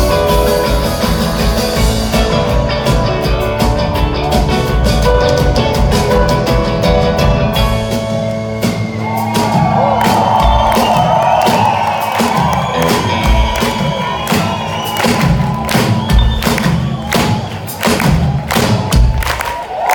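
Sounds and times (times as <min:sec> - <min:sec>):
live rock band playing: 0:00.0 - 0:19.5
crowd cheering and whooping: 0:08.1 - 0:19.9.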